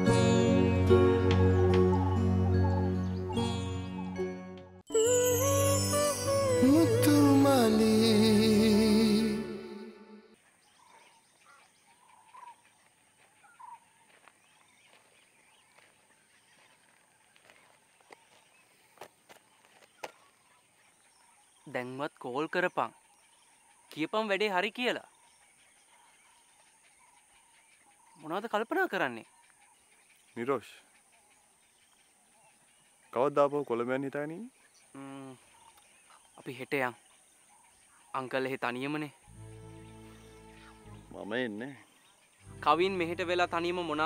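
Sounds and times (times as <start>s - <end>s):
faint bird chirps: 9.5s - 44.0s.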